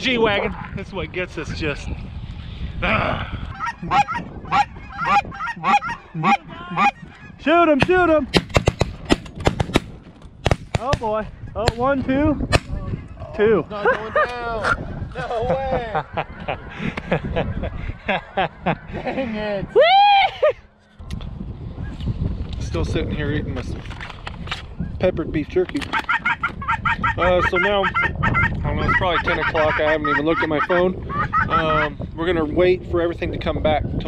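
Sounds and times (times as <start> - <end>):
goose honking: 3.5 - 7.4, 26.0 - 31.9.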